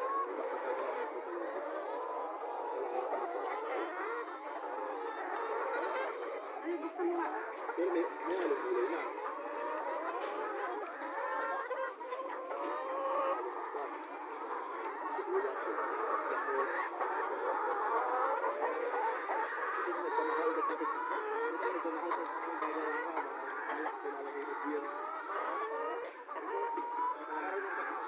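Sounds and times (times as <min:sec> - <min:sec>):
flock of chickens clucking: 0:00.0 - 0:28.0.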